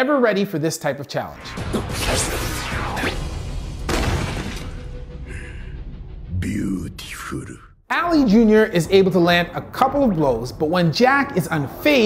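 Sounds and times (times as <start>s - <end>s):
background music: 1.3s - 12.0s
crashing shattering burst: 1.7s - 5.1s.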